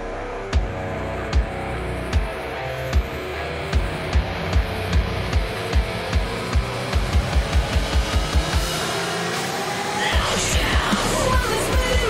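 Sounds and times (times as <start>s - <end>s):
rock song: 0.0s - 12.0s.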